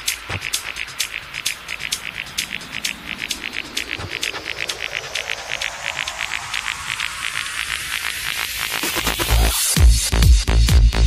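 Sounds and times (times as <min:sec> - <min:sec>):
hi-hat ticks: 0:00.0 - 0:11.0
rising hissing sweep: 0:01.2 - 0:09.8.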